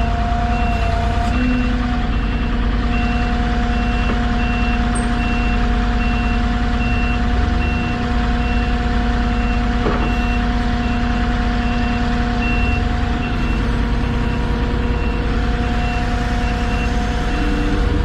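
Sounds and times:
forklift engine idling: 0:00.0 - 0:18.0
reversing alarm beeping: 0:00.0 - 0:18.0.

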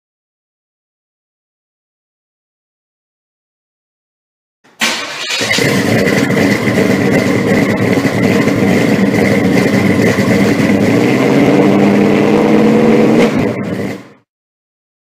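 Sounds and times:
car engine revving: 0:04.8 - 0:14.3.

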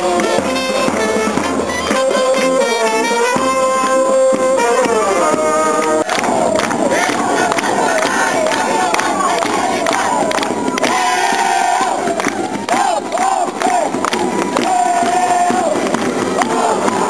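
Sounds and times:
crowd noise: 0:00.0 - 0:17.0.

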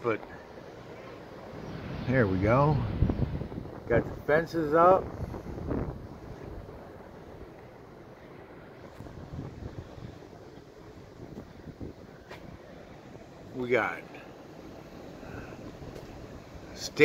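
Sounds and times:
wind on microphone: 0:01.5 - 0:07.8, 0:08.4 - 0:12.8.

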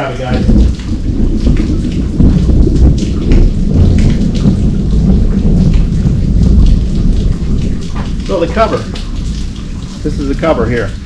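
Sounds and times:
deep continuous rumble: 0:00.0 - 0:11.0
heavy rain: 0:00.0 - 0:11.0.

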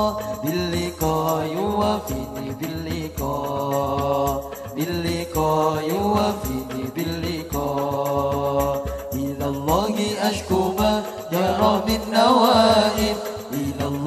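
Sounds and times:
man singing into a microphone: 0:00.0 - 0:14.0
steady drum rhythm: 0:00.0 - 0:14.0.

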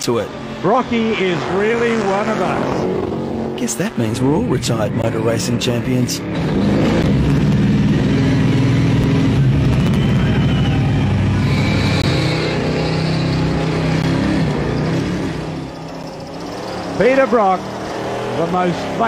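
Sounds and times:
engine revving high: 0:00.0 - 0:19.0.

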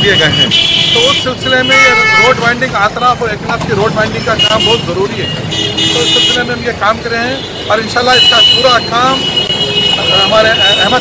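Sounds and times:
vehicle horns honking: 0:00.0 - 0:02.6, 0:04.0 - 0:06.6, 0:07.2 - 0:11.0
people talking: 0:10.0 - 0:11.0.

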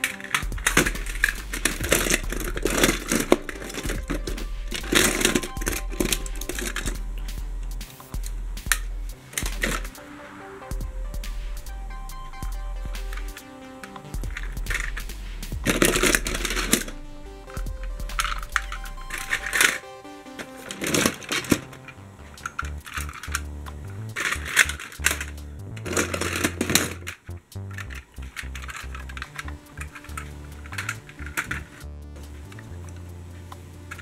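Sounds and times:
toy vehicles rattling in plastic tub: 0:00.0 - 0:07.0, 0:08.2 - 0:10.0, 0:14.2 - 0:16.9, 0:17.5 - 0:19.8, 0:20.5 - 0:23.5, 0:24.1 - 0:31.8
background music with bass line: 0:00.0 - 0:34.0.

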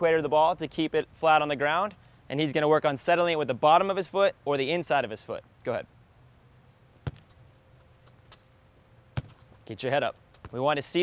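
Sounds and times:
football kick thump: 0:07.0 - 0:07.5, 0:09.1 - 0:09.6.

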